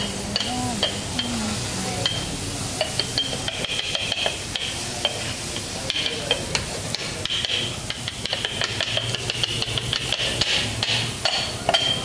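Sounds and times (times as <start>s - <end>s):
metal cutters striking griddle: 2.0s - 12.0s.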